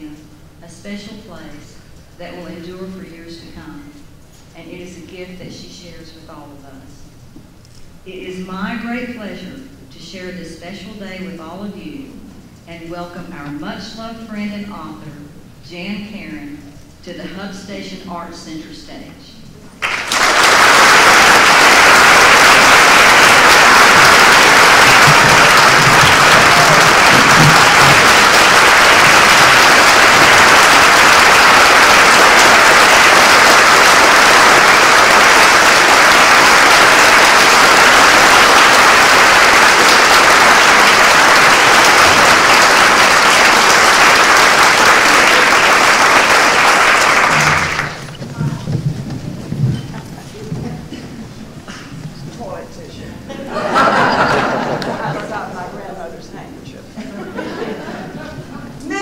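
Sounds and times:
audience applauding: 0:19.8 - 0:48.7.

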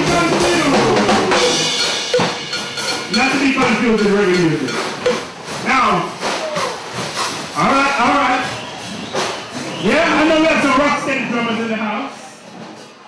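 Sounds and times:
drum kit playing: 0:00.0 - 0:10.8
live band music: 0:00.0 - 0:10.8.

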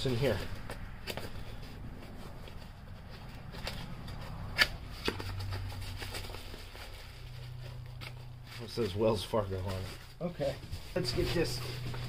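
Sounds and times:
cardboard and plastic wrap rustling: 0:00.0 - 0:12.0.

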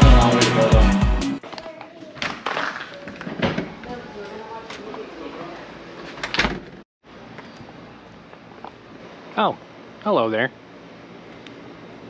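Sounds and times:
background music: 0:00.0 - 0:01.4.

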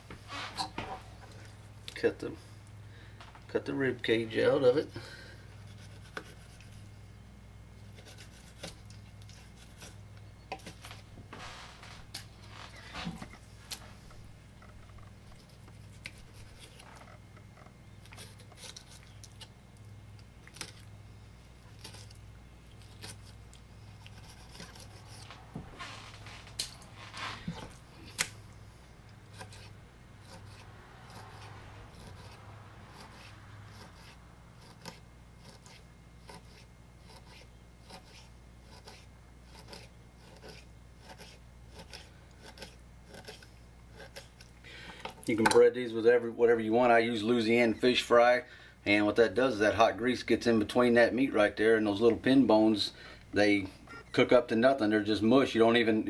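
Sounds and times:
faint low hum: 0:00.0 - 0:56.0.

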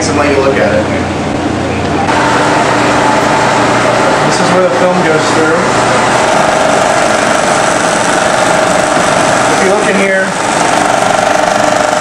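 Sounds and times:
film projector whir and clatter: 0:00.0 - 0:12.0.

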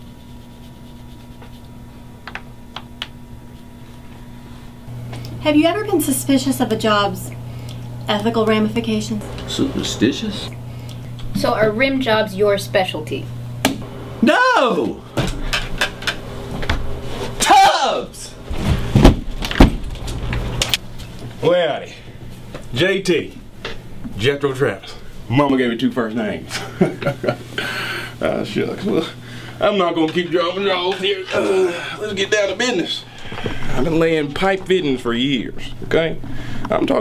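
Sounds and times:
low hum: 0:00.0 - 0:17.1
electrical room hum: 0:00.0 - 0:37.0.

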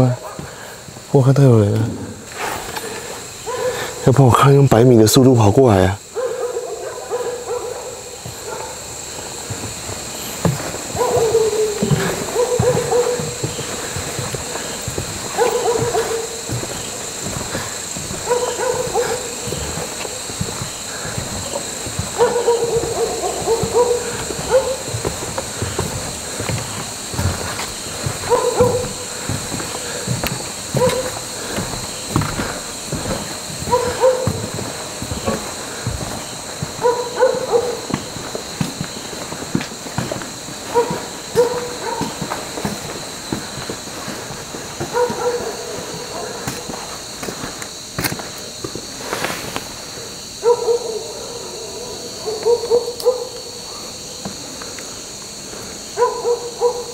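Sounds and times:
owl hooting: 0:10.9 - 0:33.0.

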